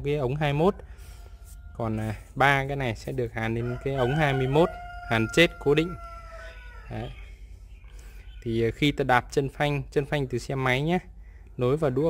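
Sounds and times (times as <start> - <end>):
faint rooster crowing: 0.1 - 8.5.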